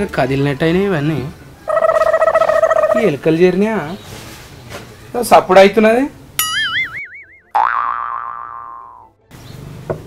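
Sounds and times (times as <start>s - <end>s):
wobbling warbling tone: 1.7s - 3.0s, 6.4s - 9.1s
twanging cartoon boing: 6.4s - 9.1s.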